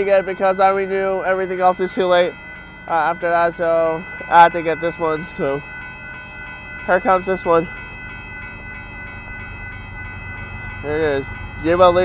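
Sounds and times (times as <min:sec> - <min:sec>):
freight train rumble: 0:00.0 - 0:12.0
railroad crossing bell ringing: 0:00.0 - 0:12.0.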